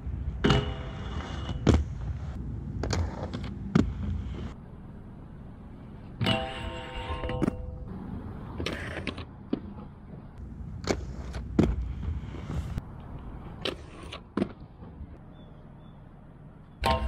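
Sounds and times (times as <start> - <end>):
inline skate wheels rolling on concrete: 0.0 - 15.3
skates clacking on ledges and rails: 0.2 - 4.6, 6.0 - 15.2.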